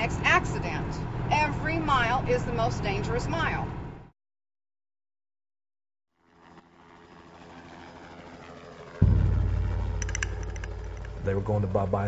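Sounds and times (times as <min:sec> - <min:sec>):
vehicle engine rumbling: 0:00.0 - 0:04.0, 0:09.0 - 0:12.0.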